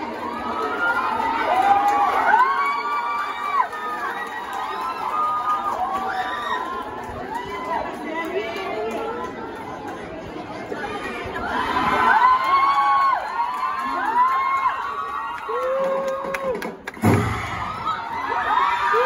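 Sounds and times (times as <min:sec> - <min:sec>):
crowd cheering and shouting: 0:00.0 - 0:09.6, 0:10.3 - 0:19.0.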